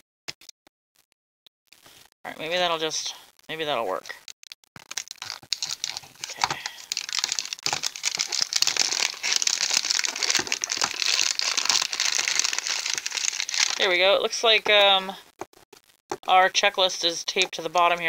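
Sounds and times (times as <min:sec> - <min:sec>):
plastic wrapping crinkling: 0:04.2 - 0:16.3.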